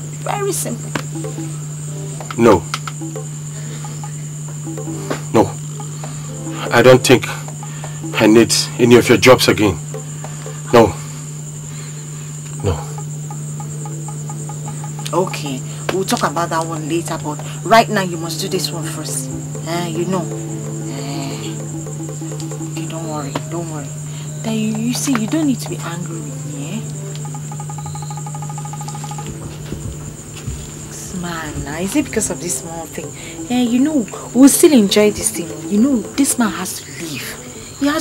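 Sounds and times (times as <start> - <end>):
crickets chirring: 0.0 - 38.0
faint musical notes: 0.0 - 38.0
low hum: 0.8 - 38.0.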